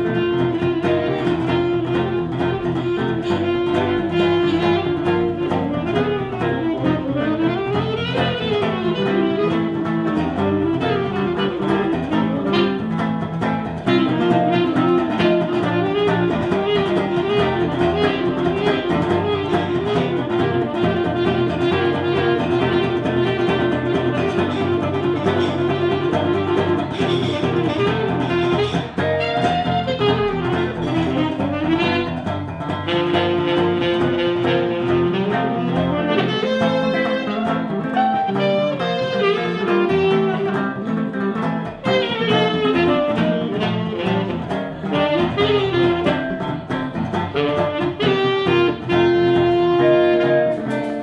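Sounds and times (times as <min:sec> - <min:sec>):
acoustic guitar accompaniment: 0:00.0 - 0:51.0
saxophone jazz melody: 0:00.0 - 0:51.0.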